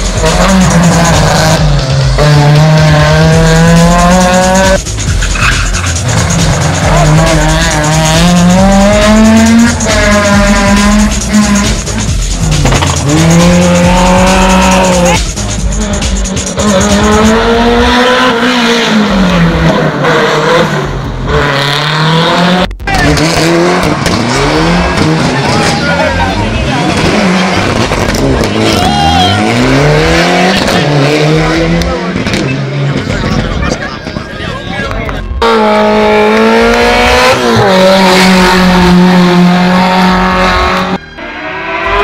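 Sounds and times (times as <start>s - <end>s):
rally car engines revving: 0.0s - 42.0s
tyre squeal: 5.1s - 6.9s.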